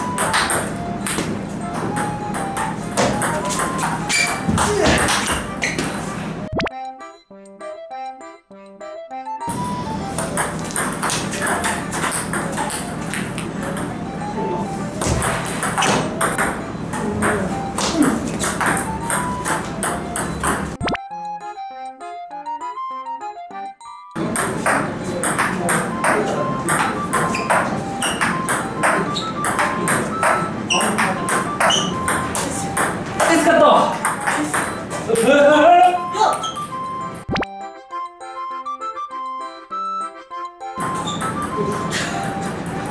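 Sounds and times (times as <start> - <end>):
ping pong ball hitting paddles: 0.0 - 6.7, 9.5 - 14.2, 14.9 - 21.0, 24.2 - 36.6, 40.8 - 42.9
background music: 0.0 - 42.9
ball bouncing on table: 0.2 - 6.0, 10.2 - 13.9, 15.0 - 21.0, 24.2 - 35.3
person speaking: 32.4 - 36.6.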